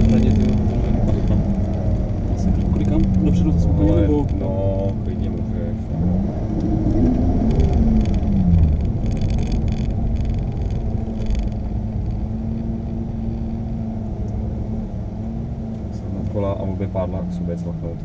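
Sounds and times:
car engine from inside cabin: 0:00.0 - 0:18.0.

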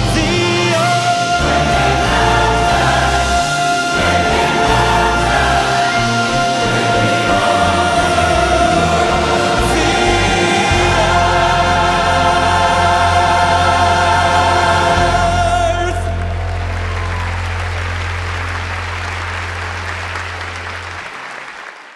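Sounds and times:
choir and orchestra holding chord: 0:00.0 - 0:16.9
audience applause: 0:16.0 - 0:21.9.

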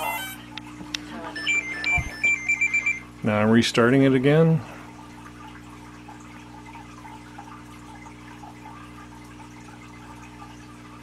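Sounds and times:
low electrical hum: 0:00.0 - 0:11.0
electronic alert beeping: 0:01.4 - 0:03.0.

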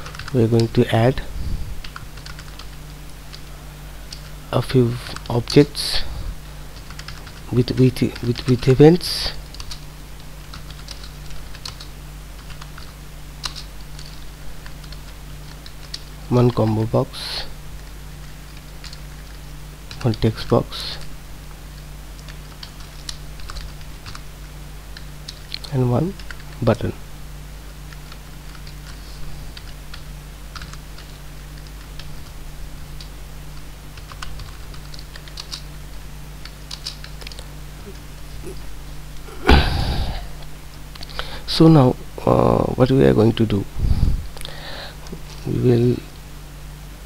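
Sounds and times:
computer keyboard typing: 0:00.0 - 0:00.7, 0:01.8 - 0:03.4, 0:06.8 - 0:08.7, 0:09.5 - 0:09.8, 0:10.4 - 0:16.6, 0:18.5 - 0:20.2, 0:21.7 - 0:24.2, 0:26.2 - 0:26.6, 0:29.6 - 0:32.3, 0:34.0 - 0:35.7, 0:36.4 - 0:37.5
faint low hum: 0:00.0 - 0:47.0.

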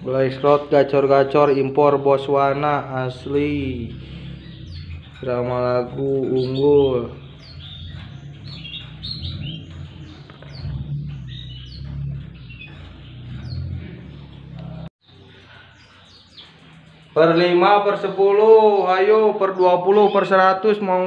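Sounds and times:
low hum: 0:00.0 - 0:15.7
canaries singing: 0:00.0 - 0:21.0.

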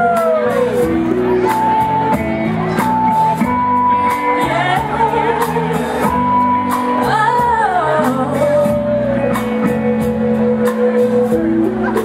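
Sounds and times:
band playing: 0:00.0 - 0:12.0
woman singing into microphone: 0:04.0 - 0:09.8.

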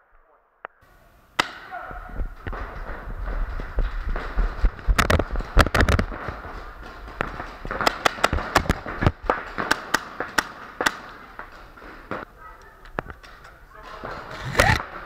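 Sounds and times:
paintball markers firing: 0:01.4 - 0:15.0.

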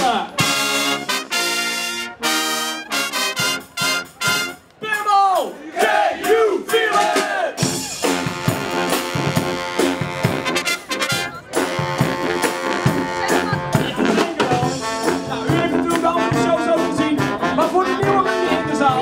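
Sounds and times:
street brass band playing: 0:00.0 - 0:19.0.

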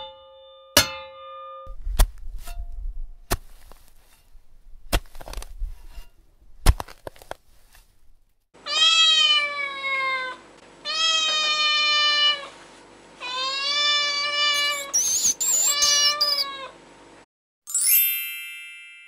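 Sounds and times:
cat meowing: 0:08.7 - 0:12.5, 0:13.2 - 0:16.8
high-pitched squeaking: 0:14.5 - 0:16.5
bright chime: 0:17.7 - 0:19.0.

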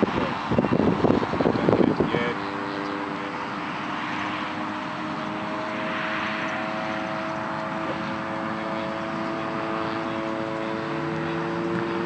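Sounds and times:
propeller drone droning overhead: 0:00.0 - 0:12.0.

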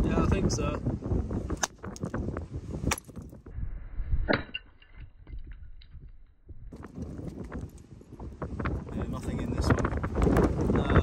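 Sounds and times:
wind rumble on microphone: 0:00.0 - 0:11.0
hammer cracking rock: 0:02.8 - 0:03.4.

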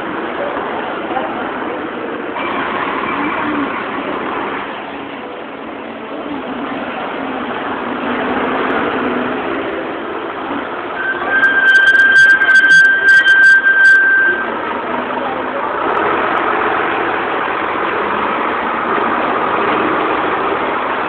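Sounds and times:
heavy truck engine: 0:00.0 - 0:21.0
street traffic: 0:00.0 - 0:21.0
high steady squeal: 0:10.6 - 0:15.3.

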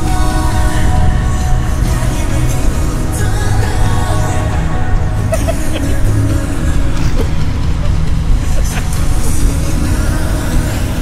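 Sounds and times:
faint pop song: 0:00.0 - 0:11.0
pickup truck rumbling: 0:00.0 - 0:11.0
road and wind noise: 0:00.0 - 0:11.0.

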